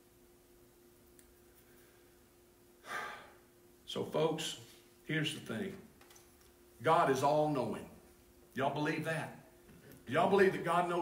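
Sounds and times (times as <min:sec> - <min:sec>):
faint steady hum: 0:00.0 - 0:11.0
man's short breath: 0:02.8 - 0:03.4
man speaking: 0:03.9 - 0:05.9, 0:08.6 - 0:11.0.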